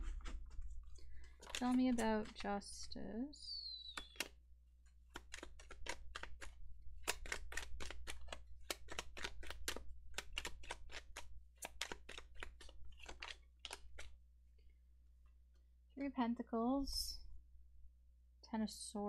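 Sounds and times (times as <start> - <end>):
cards being shuffled: 0.0 - 3.0, 3.9 - 14.2.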